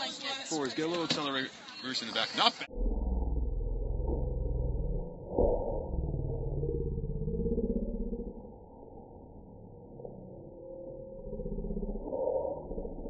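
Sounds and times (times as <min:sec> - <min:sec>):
deep muffled drawn-out rumble: 0:03.0 - 0:13.0
low voice-like sliding tone: 0:08.8 - 0:13.0.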